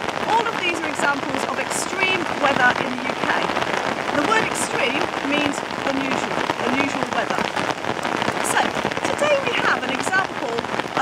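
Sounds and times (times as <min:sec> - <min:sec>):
heavy rain falling: 0:00.0 - 0:11.0.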